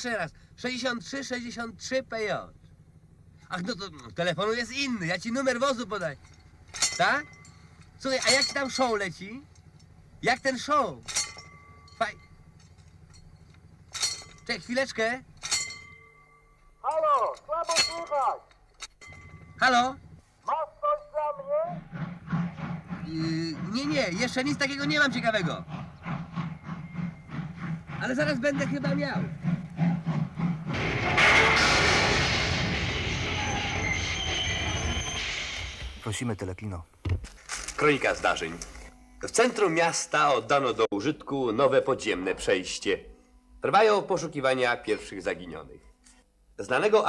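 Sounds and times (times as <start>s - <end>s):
train wheels squealing: 0.0s - 18.3s, 19.1s - 36.1s
train rumble: 0.0s - 37.1s.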